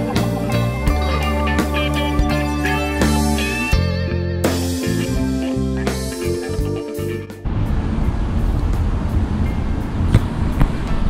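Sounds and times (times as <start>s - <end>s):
guitar background music: 0.0s - 7.5s
road traffic rumble: 4.8s - 11.0s.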